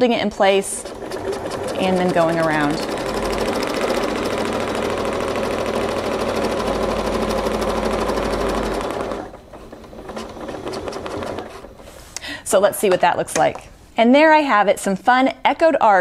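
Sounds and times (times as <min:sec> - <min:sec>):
sewing machine stitching: 0:00.4 - 0:11.8
sewing machine clicks: 0:00.8 - 0:11.7.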